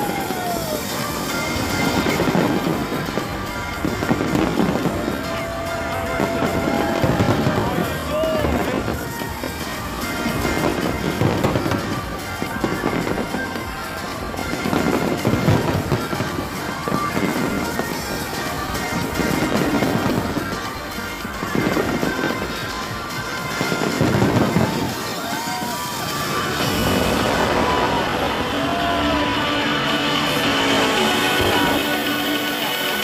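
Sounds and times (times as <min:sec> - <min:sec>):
fireworks bangs and crackling: 0:00.0 - 0:33.0
music playing: 0:00.0 - 0:33.0.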